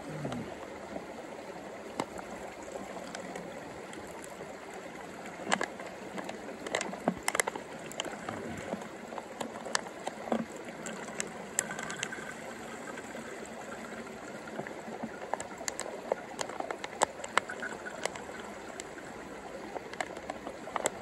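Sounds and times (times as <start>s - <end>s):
water trickling into bottle: 1.8s - 21.0s.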